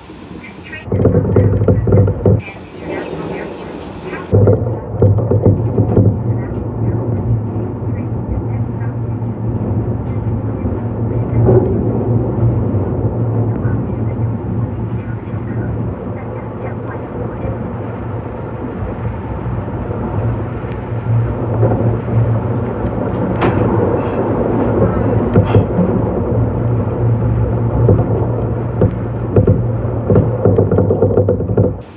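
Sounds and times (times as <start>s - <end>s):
passing train rush: 0.0s - 4.4s, 5.6s - 30.3s
train motors and wheels humming: 0.0s - 31.9s.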